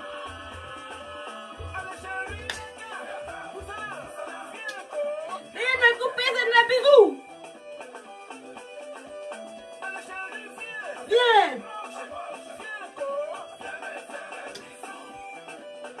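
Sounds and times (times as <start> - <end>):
music with fast short notes: 0.0 - 16.0.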